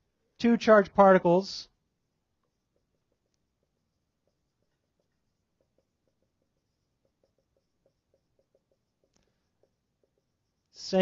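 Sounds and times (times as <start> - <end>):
marker writing on whiteboard: 1.7 - 11.0.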